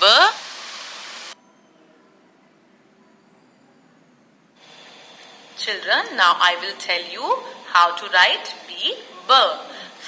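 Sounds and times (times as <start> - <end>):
recording hiss: 0.0 - 1.4.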